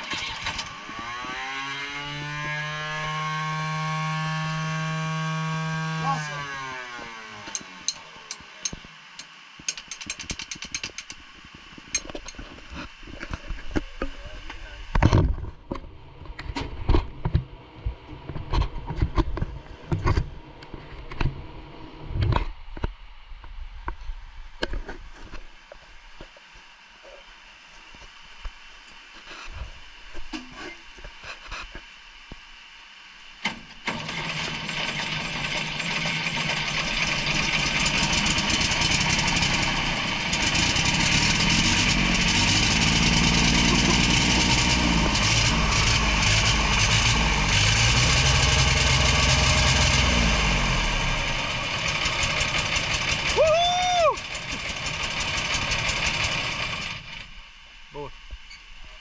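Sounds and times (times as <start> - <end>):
winch engine revving: 33.8 - 57.3.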